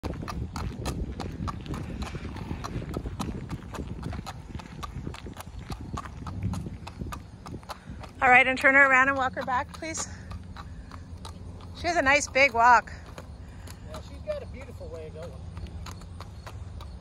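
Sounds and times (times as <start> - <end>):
hoofbeats on asphalt: 0.0 - 17.0.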